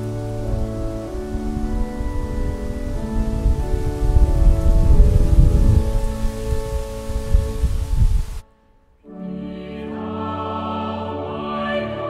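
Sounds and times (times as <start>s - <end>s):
loud ragged low rumble: 0.0s - 8.4s
organ playing held chords: 0.0s - 8.4s.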